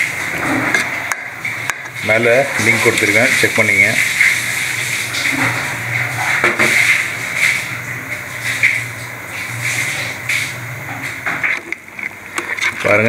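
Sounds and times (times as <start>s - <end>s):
gravy bubbling and sizzling in pot: 0.0s - 13.0s.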